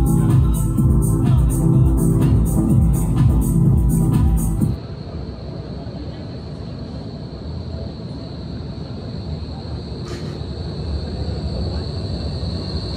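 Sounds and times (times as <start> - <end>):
high-pitched whine: 0.0 - 12.9
low rumble of traffic and trams: 0.0 - 12.9
short hiss: 10.0 - 10.4.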